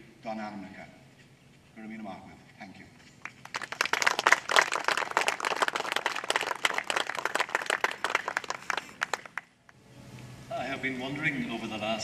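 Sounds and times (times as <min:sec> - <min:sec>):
audience applauding: 0:03.2 - 0:09.5.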